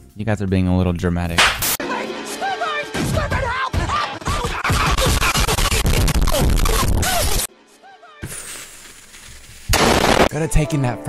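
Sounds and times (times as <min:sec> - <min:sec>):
loud blast of noise: 0:09.7 - 0:10.3.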